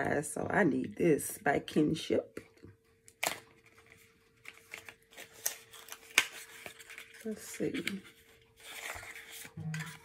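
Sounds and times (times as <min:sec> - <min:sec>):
packaging rustling: 0:03.2 - 0:10.0.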